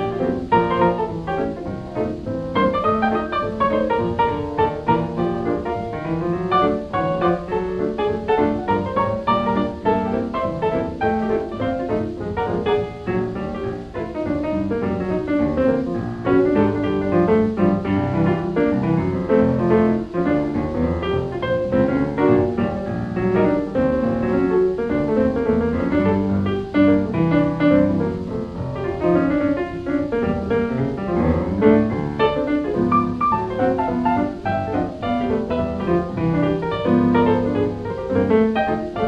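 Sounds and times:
jazz piano music: 0.0 - 39.0.

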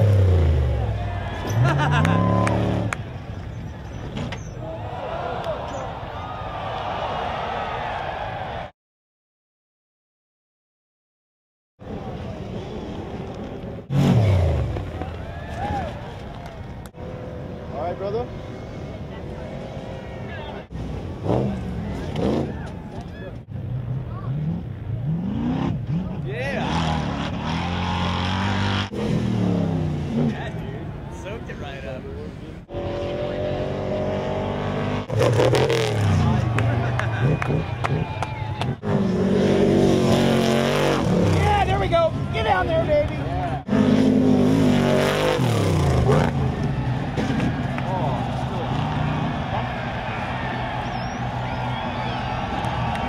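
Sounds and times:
crowd voices and shouts: 0.4 - 8.7, 11.8 - 28.1, 30.2 - 53.0
engine revving hard: 13.9 - 14.8, 21.2 - 22.5, 24.2 - 30.4, 32.7 - 41.7, 43.6 - 46.6.

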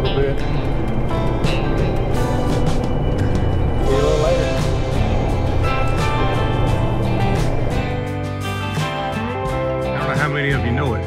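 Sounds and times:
truck road and engine rumble: 0.0 - 8.1
background music with melody: 0.0 - 11.0.

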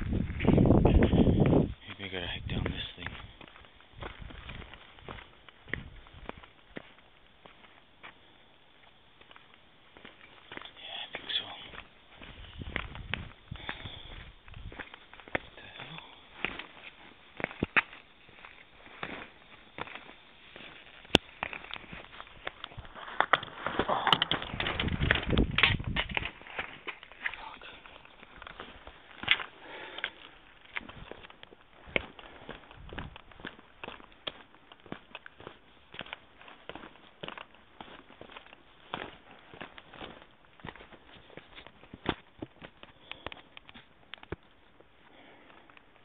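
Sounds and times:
footsteps scrambling over loose rocks: 0.0 - 8.2, 9.2 - 46.0.

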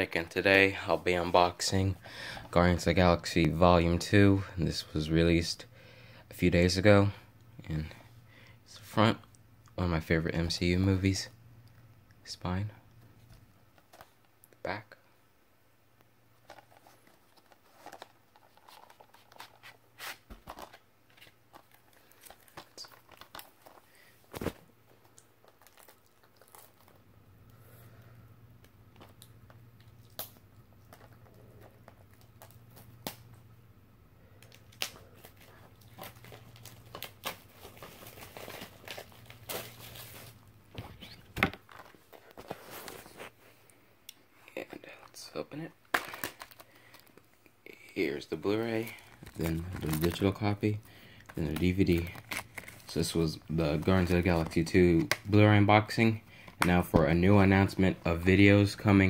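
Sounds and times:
faint low hum: 0.0 - 59.0
plastic wrap crinkling and tearing: 16.4 - 27.0, 34.4 - 43.3, 45.8 - 57.7.

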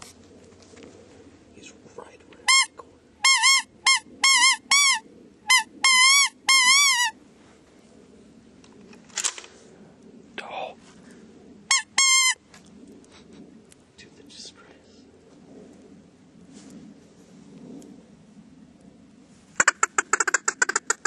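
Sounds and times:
faint rustling: 14.6 - 17.8
goose-like honking calls: 19.6 - 21.0.

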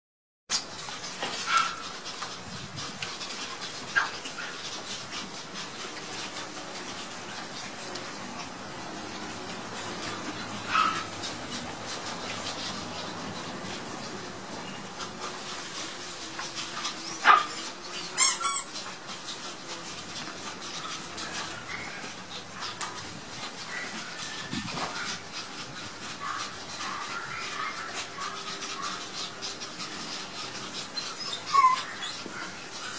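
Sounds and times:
steady background noise: 0.5 - 32.9
puppies yipping: 0.8 - 32.9.

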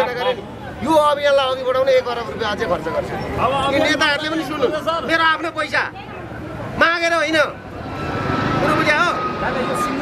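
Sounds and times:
vehicle rumble: 0.0 - 10.0.

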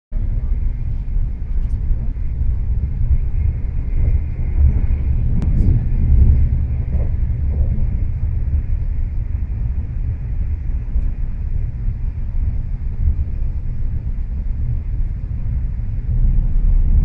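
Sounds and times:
vehicle rumble from inside cabin: 0.2 - 17.0.

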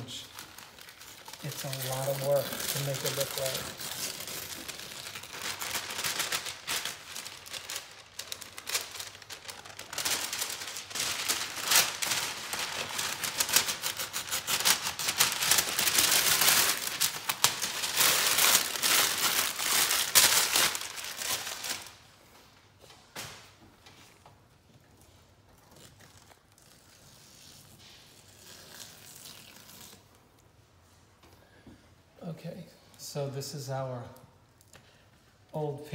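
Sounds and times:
paper crumpled by hand: 0.0 - 22.0, 25.5 - 30.1.

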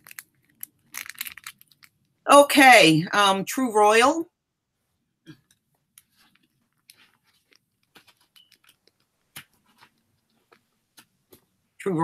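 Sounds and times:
crackling clicks: 0.0 - 2.2, 5.4 - 11.5.

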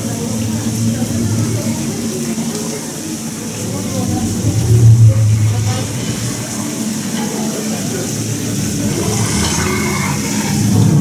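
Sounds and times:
deep rumbling dragon growl: 0.0 - 11.0
indistinct voices: 0.0 - 11.0.

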